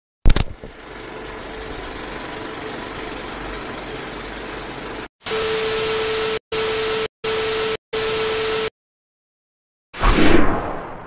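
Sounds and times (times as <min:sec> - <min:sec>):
film projector whirring: 0:00.3 - 0:05.1.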